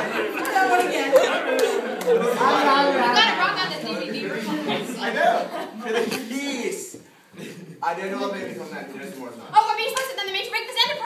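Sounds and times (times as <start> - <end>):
several voices talking: 0.0 - 11.0.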